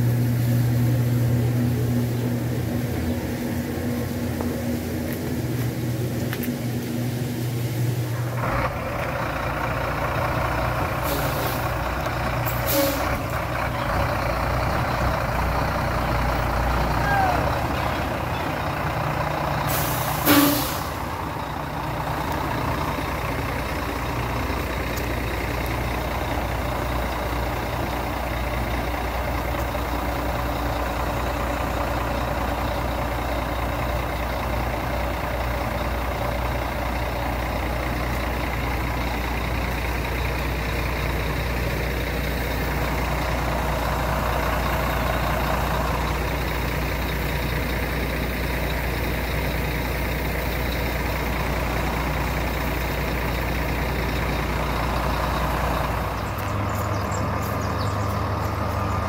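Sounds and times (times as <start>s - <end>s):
truck diesel engine idling: 0.0s - 59.0s
air brake hiss: 11.0s - 11.8s, 12.5s - 13.2s, 19.6s - 21.1s.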